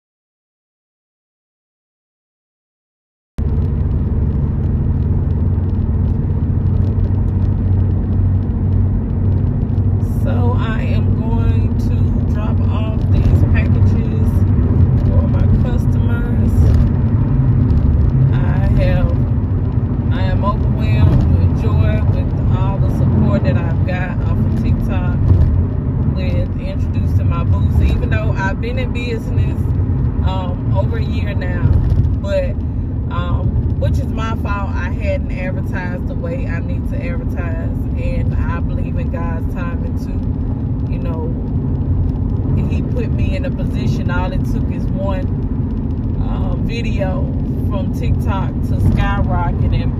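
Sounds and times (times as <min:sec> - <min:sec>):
car cabin road rumble: 0:03.4 - 0:49.9
person talking: 0:10.0 - 0:14.4, 0:15.0 - 0:16.7, 0:18.3 - 0:19.2, 0:20.1 - 0:25.2, 0:26.2 - 0:29.6, 0:30.2 - 0:40.2, 0:46.2 - 0:49.9.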